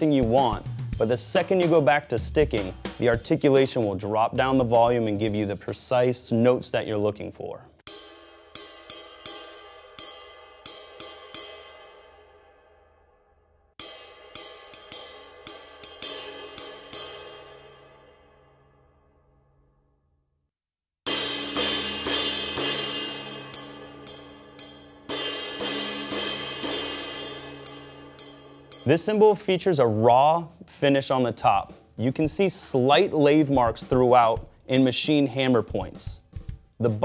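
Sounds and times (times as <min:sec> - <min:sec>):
ride cymbal played with drumstick: 0:07.8 - 0:12.5, 0:13.8 - 0:18.2, 0:21.1 - 0:29.8.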